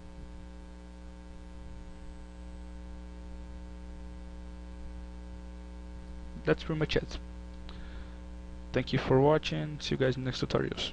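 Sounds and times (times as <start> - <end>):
electrical mains hum: 0.0 - 10.9.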